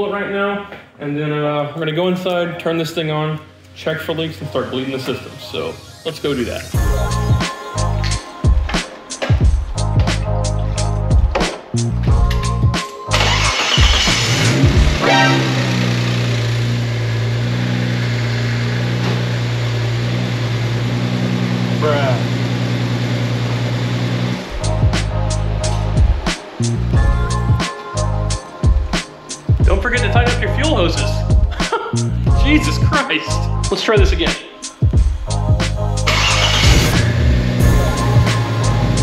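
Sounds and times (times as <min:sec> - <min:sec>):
background music: 0:00.0 - 0:17.7, 0:24.4 - 0:39.0
car engine starting and idling: 0:12.2 - 0:27.5, 0:36.0 - 0:39.0.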